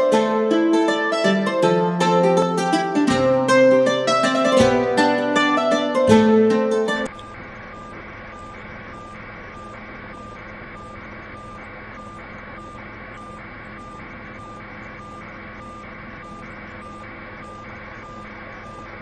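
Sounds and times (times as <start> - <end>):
electronic alarm beeping: 3.9 - 19.0.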